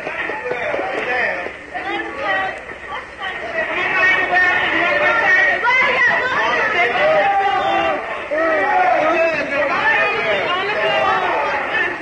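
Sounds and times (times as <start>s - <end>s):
overlapping voices chattering: 0.0s - 12.0s.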